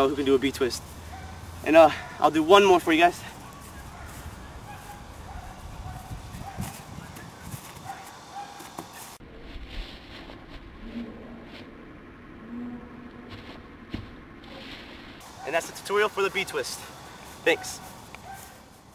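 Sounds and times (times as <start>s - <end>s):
faint outdoor background noise: 0.0s - 18.9s.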